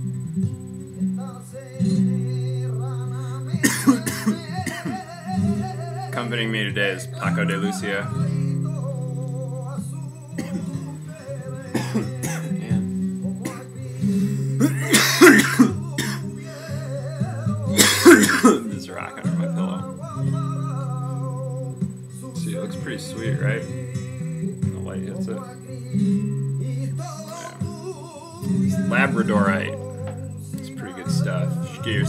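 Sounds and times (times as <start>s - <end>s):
flamenco guitar music: 0.0s - 32.0s
man coughing: 3.6s - 5.0s, 10.4s - 10.8s, 11.7s - 12.8s, 13.4s - 13.7s, 14.6s - 16.3s, 17.8s - 18.8s.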